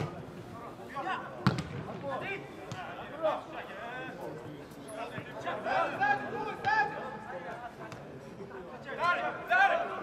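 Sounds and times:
football kicked thud: 1.4 - 1.9.

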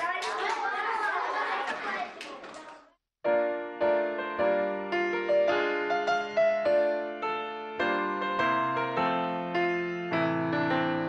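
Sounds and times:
young children chattering: 0.0 - 3.0.

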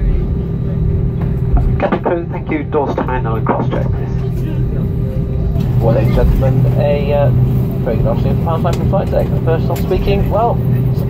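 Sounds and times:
aircraft cabin hum: 0.0 - 11.0
announcement over cabin speakers: 0.0 - 11.0.

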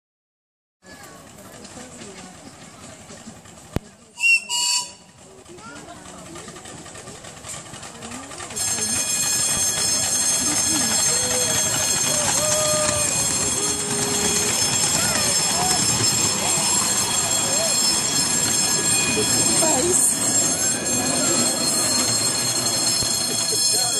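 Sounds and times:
miniature train running past: 0.8 - 23.9
steam locomotive whistle toots: 4.1 - 5.2, 8.6 - 23.1.

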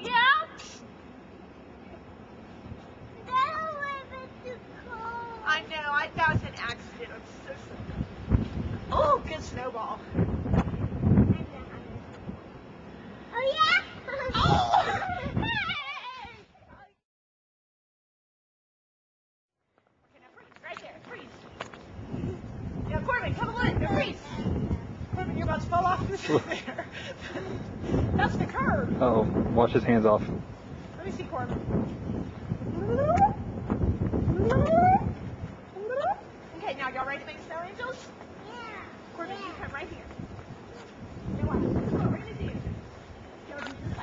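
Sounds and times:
wind rumbling on microphone: 4.9 - 16.9, 20.3 - 44.0
small child squealing: 13.6 - 16.4.

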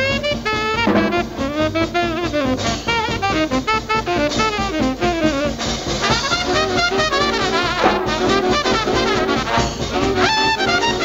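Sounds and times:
big band swing music: 0.0 - 11.0
saxophone solo: 0.0 - 11.0.

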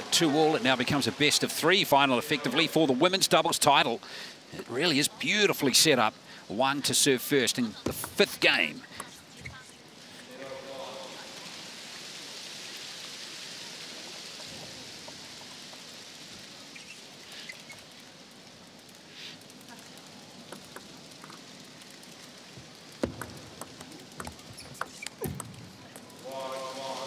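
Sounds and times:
table tennis ball clicking: 20.4 - 21.4, 23.0 - 26.2.

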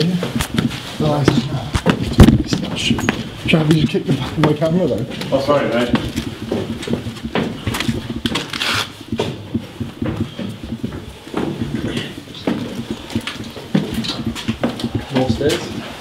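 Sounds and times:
footsteps: 0.0 - 16.0.

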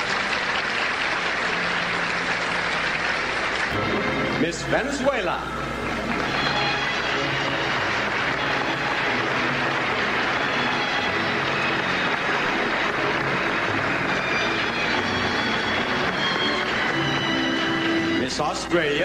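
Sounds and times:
audience applauding: 0.0 - 19.0
orchestra music: 0.0 - 19.0.

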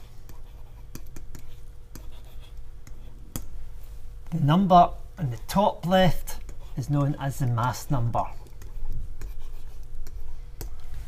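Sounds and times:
pen writing: 0.0 - 3.2, 8.2 - 11.0
faint steady hum: 0.0 - 11.0.

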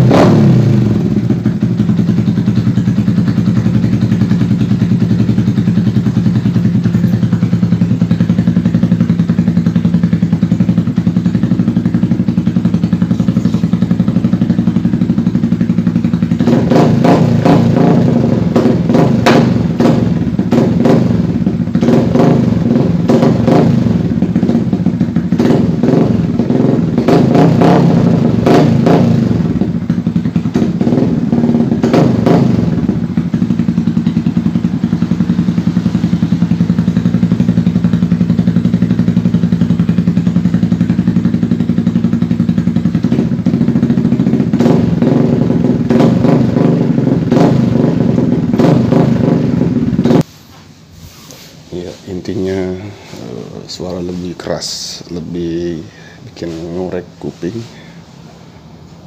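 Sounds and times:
engine throttle blips: 0.0 - 59.0
motorcycle engine idling: 0.0 - 59.0.

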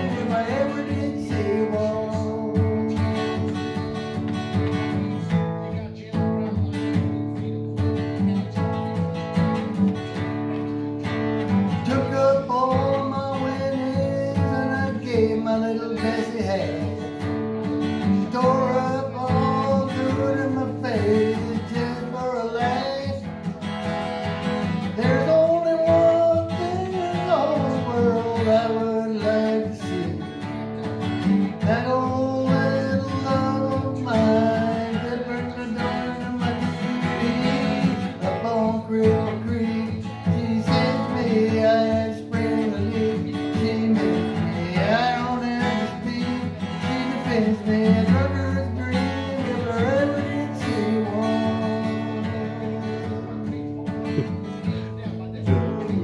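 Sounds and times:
acoustic guitar: 0.0 - 56.0
man singing: 0.0 - 56.0.

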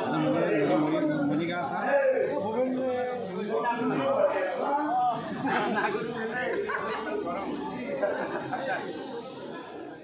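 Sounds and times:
group of people talking: 0.0 - 10.0.

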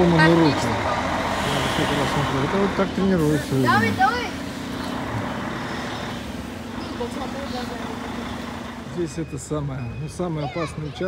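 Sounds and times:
roadside traffic rush: 0.0 - 11.0
vehicle engine humming: 0.0 - 11.0.

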